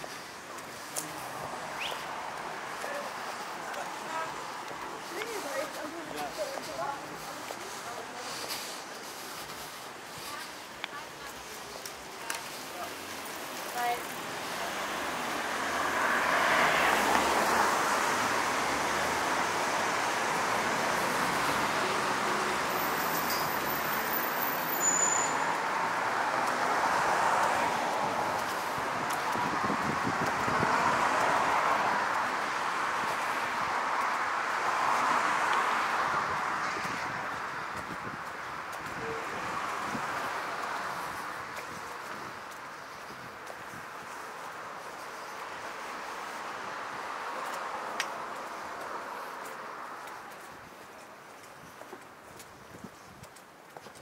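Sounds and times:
cars passing: 0:00.0 - 0:52.7.

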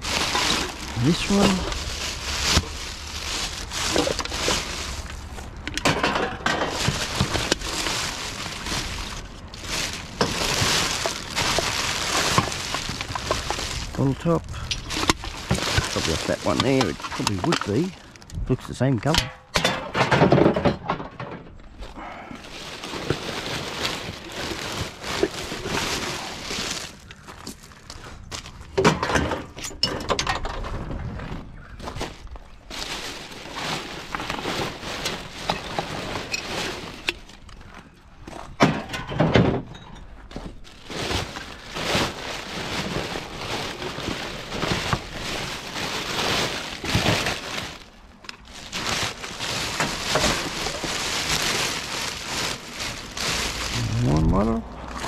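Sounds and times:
plastic bin liners rustling: 0:00.0 - 0:18.1, 0:19.0 - 0:27.2, 0:31.2 - 0:37.8, 0:38.4 - 0:54.2.

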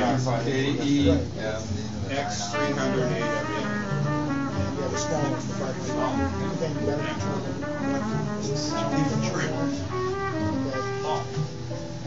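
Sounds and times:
instrumental music over loudspeakers: 0:00.0 - 0:12.0.

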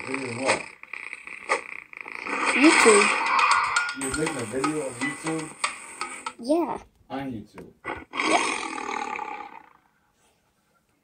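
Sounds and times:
tiger roar through laptop speakers: 0:07.8 - 0:09.9.

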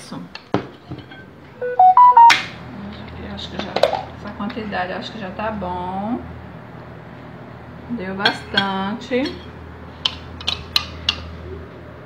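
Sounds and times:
electronic jingle of beeps: 0:01.6 - 0:02.4.

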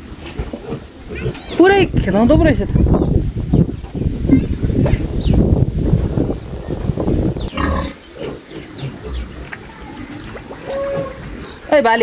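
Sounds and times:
pigs grunting: 0:00.0 - 0:01.6, 0:07.4 - 0:11.7.

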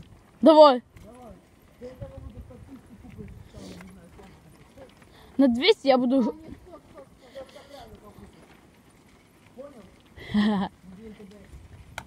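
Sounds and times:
bicycles rolling on pavement: 0:00.0 - 0:12.0.

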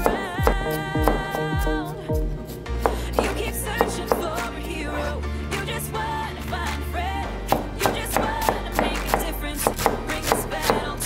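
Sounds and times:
cleaver chopping on cutting board: 0:00.0 - 0:01.4, 0:07.5 - 0:10.9
pop song with vocals: 0:00.0 - 0:11.0.

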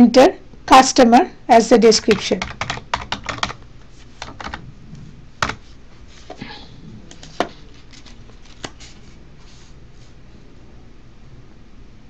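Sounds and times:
computer keyboard typing: 0:02.0 - 0:03.6, 0:04.2 - 0:04.6, 0:05.4 - 0:05.6, 0:07.1 - 0:08.9.

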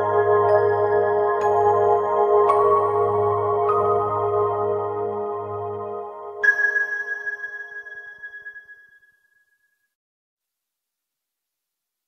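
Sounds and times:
lower music: 0:00.0 - 0:08.5
high bell-like chime ringing: 0:06.4 - 0:09.8.

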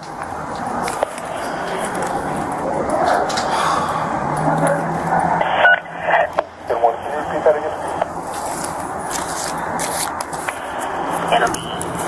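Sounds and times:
radio hiss: 0:05.3 - 0:08.4, 0:10.5 - 0:12.0
radio beep: 0:05.4 - 0:08.1, 0:11.3 - 0:11.8
voice over portable radio: 0:05.4 - 0:08.2, 0:11.2 - 0:12.0.

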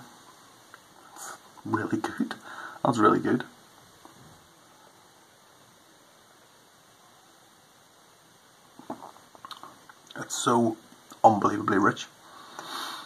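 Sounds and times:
faint hiss: 0:00.0 - 0:13.0.

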